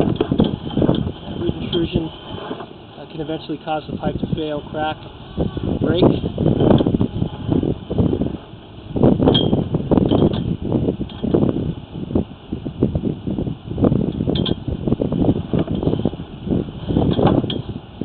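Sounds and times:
cable knocking and rattling in pipe: 0:00.0 - 0:02.8, 0:09.0 - 0:11.4, 0:14.1 - 0:14.7, 0:16.9 - 0:17.8.

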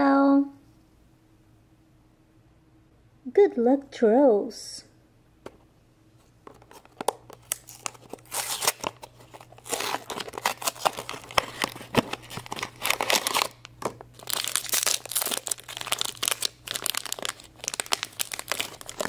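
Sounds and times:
foil packet crinkling and tearing: 0:06.6 - 0:19.0.

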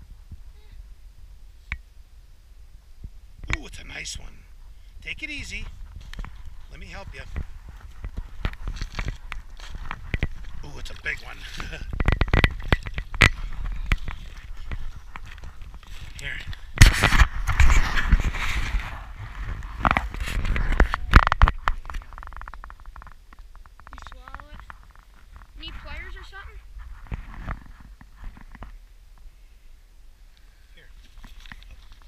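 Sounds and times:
voices: 0:03.4 - 0:12.0, 0:13.2 - 0:16.7, 0:23.9 - 0:24.8, 0:25.5 - 0:26.7
rustling and knocking: 0:05.4 - 0:28.8.

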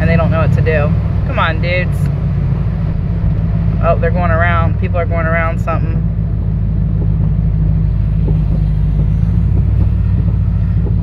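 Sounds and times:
car engine rumble: 0:00.0 - 0:11.0
tyres on wet road: 0:00.0 - 0:11.0.

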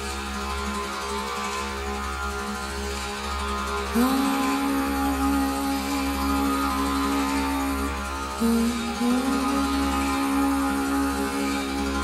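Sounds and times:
continuous drone: 0:00.0 - 0:12.0.

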